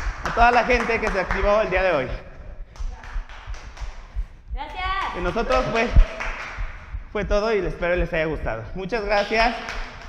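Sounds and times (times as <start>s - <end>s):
faint hand claps: 0.0s - 2.0s, 2.7s - 4.2s, 5.0s - 6.8s, 9.2s - 10.0s
man speaking: 0.3s - 2.5s, 5.2s - 6.1s, 7.1s - 9.8s.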